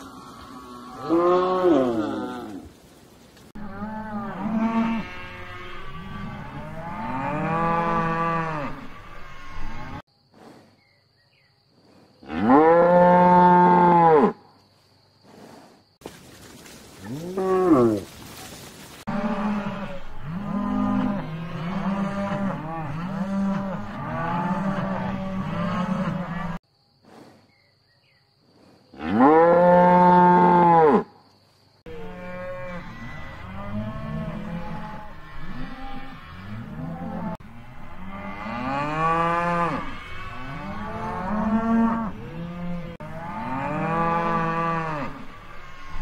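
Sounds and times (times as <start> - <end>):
cattle mooing: 0.0 - 2.6, 3.6 - 10.0, 12.3 - 14.4, 19.1 - 26.6, 31.9 - 46.0.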